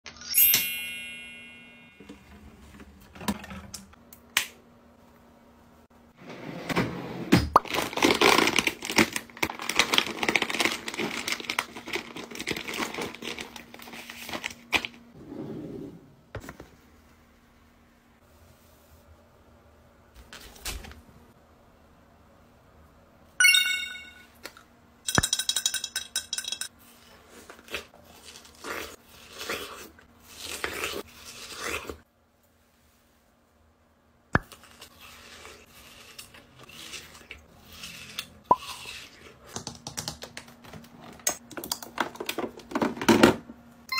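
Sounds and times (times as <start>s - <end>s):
bright jingling: 0.2s - 2.0s, 23.4s - 24.3s
chewing crisp watermelon: 27.2s - 32.0s, 34.5s - 39.4s.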